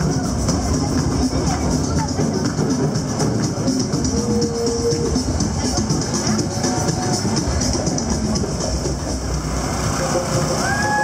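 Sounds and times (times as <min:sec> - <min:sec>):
street parade din: 0:00.0 - 0:11.0.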